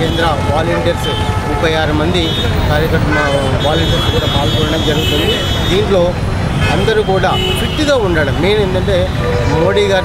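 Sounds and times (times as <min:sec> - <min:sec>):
man talking: 0:00.0 - 0:10.0
road traffic rumble: 0:00.0 - 0:10.0.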